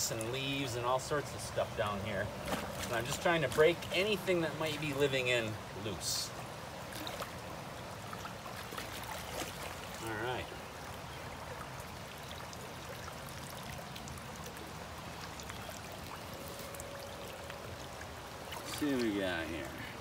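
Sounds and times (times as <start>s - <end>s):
creek water flowing: 0.0s - 20.0s.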